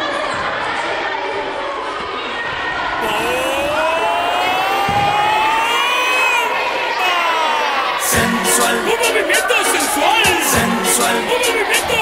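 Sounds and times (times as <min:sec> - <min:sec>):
children shouting together: 0:03.0 - 0:08.2.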